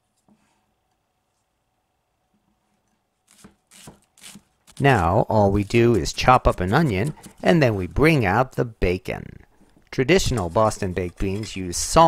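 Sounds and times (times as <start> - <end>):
knife slicing onion on board: 5.6 - 7.8, 10.2 - 12.0.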